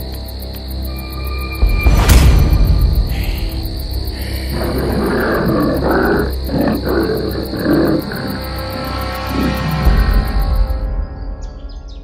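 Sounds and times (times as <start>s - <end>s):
ominous background music: 0.0s - 12.0s
tiger growling: 4.2s - 10.3s.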